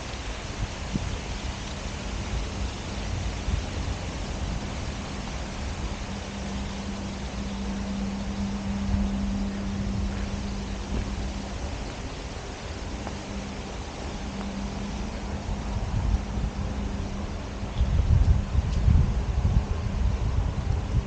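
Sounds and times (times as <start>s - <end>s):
steady low hum: 0.0s - 21.0s
wind rushing over microphone: 0.0s - 21.0s.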